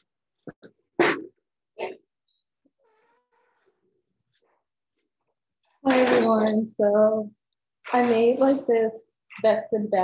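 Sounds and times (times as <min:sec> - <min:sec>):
woman speaking: 0:05.9 - 0:10.0.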